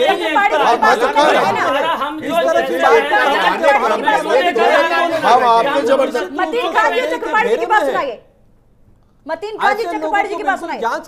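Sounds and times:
people talking over one another: 0.0 - 8.2.

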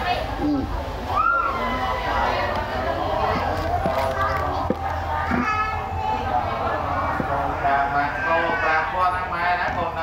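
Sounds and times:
children's voices: 0.0 - 9.4
people talking: 0.0 - 10.0.

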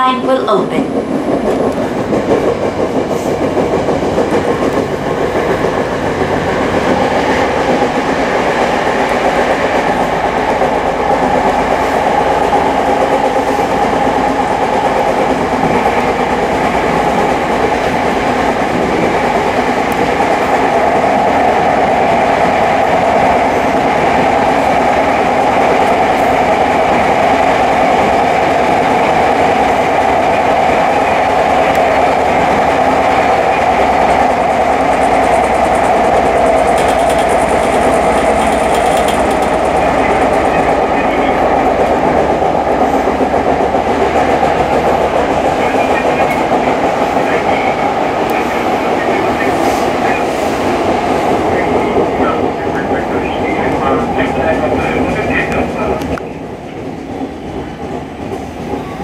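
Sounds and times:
electric train running: 0.0 - 59.0
wheels clickety-clack: 0.9 - 59.0.

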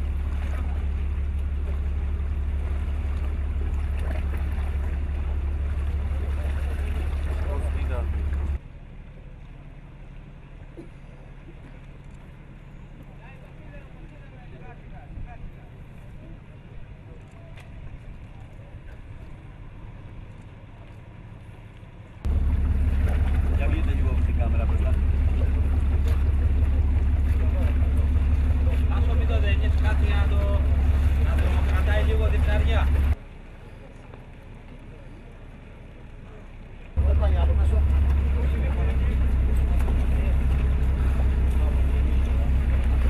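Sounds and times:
low engine drone: 0.0 - 43.0
low hum: 0.0 - 43.0
people talking: 6.4 - 8.6, 23.5 - 33.2, 36.2 - 43.0.

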